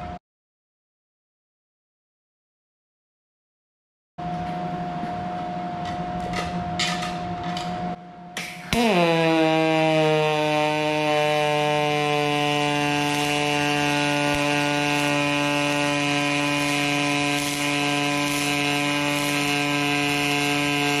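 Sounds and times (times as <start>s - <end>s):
arc welding buzzing hum: 4.2s - 21.0s
welding hiss: 8.7s - 21.0s.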